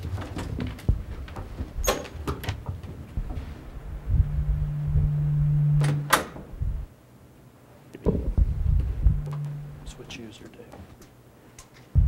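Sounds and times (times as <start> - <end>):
low electrical hum: 0.0 - 12.0
microphone handling thumps: 0.5 - 6.9, 8.0 - 9.9.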